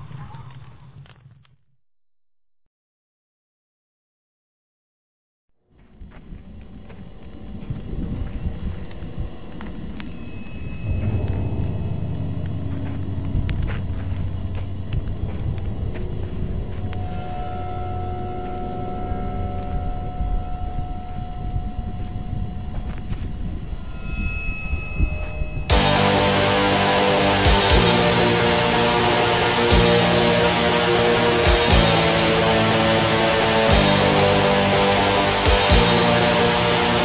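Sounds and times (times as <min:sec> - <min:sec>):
low rumbling noise: 0:05.8 - 0:37.0.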